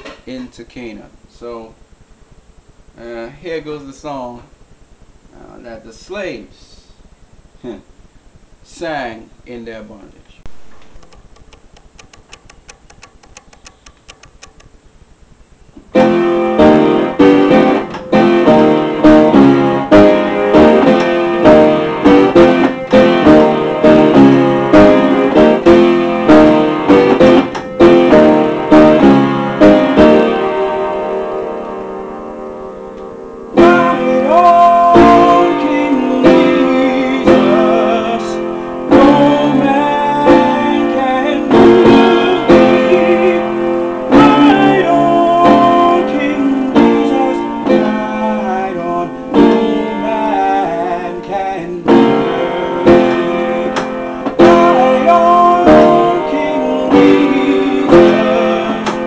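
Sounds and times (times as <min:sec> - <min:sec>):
upright piano playing loud chords: 0:15.9 - 0:59.0.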